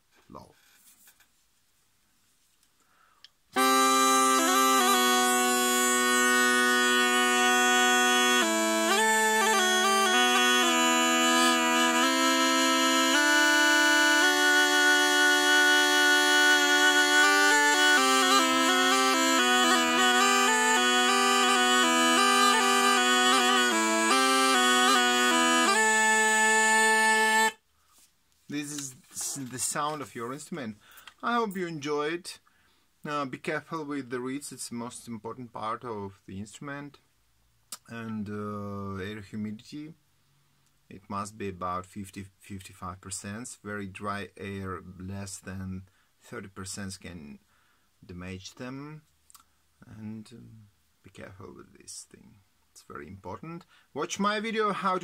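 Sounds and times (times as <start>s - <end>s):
double-pipe reed instrument playing: 3.6s - 27.6s.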